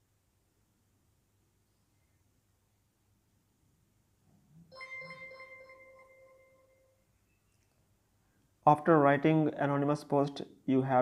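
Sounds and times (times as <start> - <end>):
soft bell-like chime: 4.7 - 7.2.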